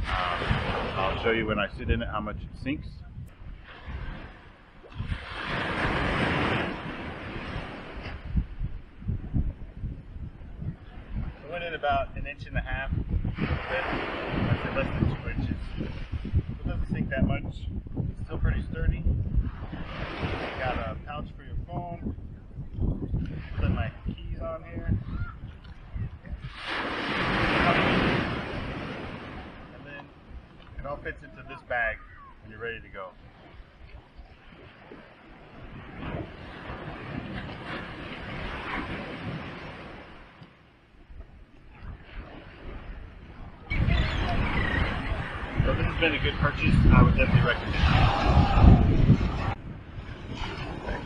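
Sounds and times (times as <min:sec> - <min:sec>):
wave breaking on beach: 0:00.0 - 0:01.5, 0:03.6 - 0:08.2, 0:13.4 - 0:16.2, 0:26.4 - 0:30.1, 0:34.4 - 0:40.4, 0:41.9 - 0:51.0
distant surf: 0:00.0 - 0:51.0
wind buffeting microphone: 0:00.0 - 0:51.0.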